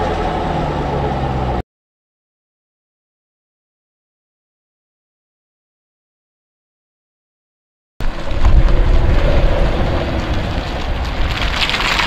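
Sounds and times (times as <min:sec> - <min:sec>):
car engine running low: 0:00.0 - 0:01.6
wind buffeting microphone: 0:08.0 - 0:12.0.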